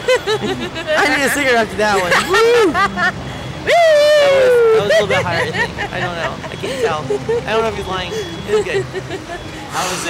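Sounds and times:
person whooping: 3.6 - 5.1.

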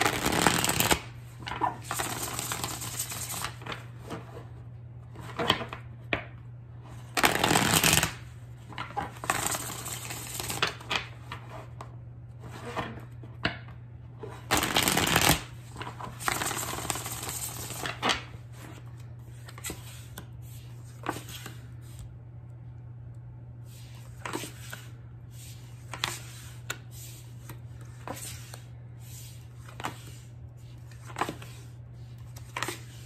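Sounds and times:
cards being shuffled: 0.0 - 4.3, 7.0 - 11.8, 14.3 - 22.1, 23.7 - 33.0.

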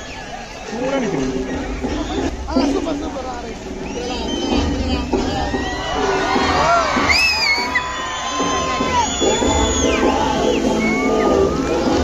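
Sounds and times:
crowd cheering and whistling: 0.0 - 2.4, 3.7 - 12.0
music over loudspeakers: 1.1 - 12.0.

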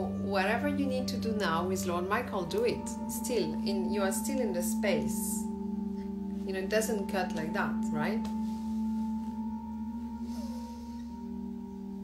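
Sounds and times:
meditation music drone tones: 0.0 - 12.0.

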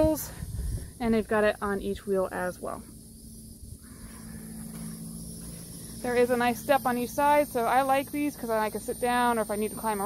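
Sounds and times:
wind rumble on microphone: 0.0 - 2.8
high hiss: 0.0 - 10.0
steady low hum: 0.0 - 10.0.

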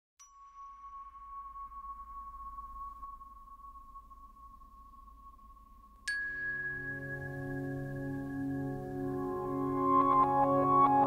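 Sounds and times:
soft mallet music: 0.2 - 11.0.

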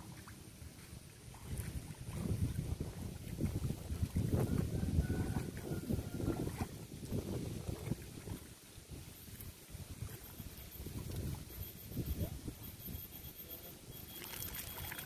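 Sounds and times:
wind buffeting microphone: 0.7 - 13.1.

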